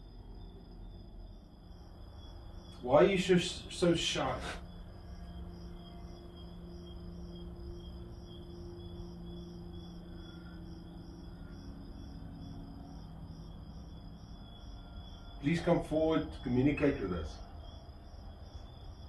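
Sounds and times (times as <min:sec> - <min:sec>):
low hum: 0:00.0 - 0:18.4
crickets chirping: 0:00.0 - 0:19.0.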